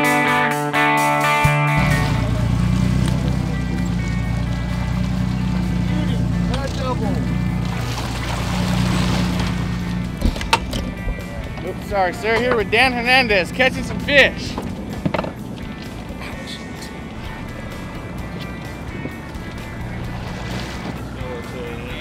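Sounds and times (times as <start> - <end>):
boat engine droning: 1.5 - 22.0
faint voices: 20.7 - 22.0.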